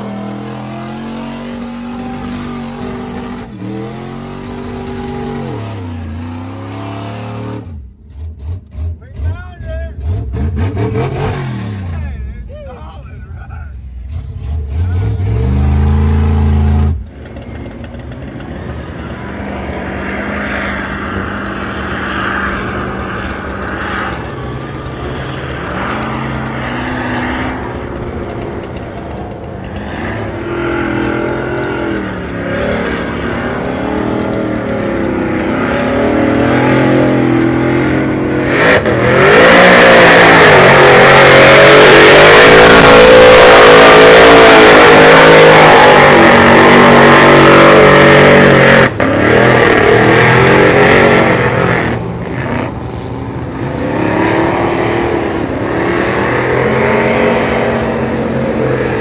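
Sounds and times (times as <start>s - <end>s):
truck engine revving: 0.0s - 12.3s, 14.0s - 59.0s
heavy rushing noise: 13.8s - 59.0s.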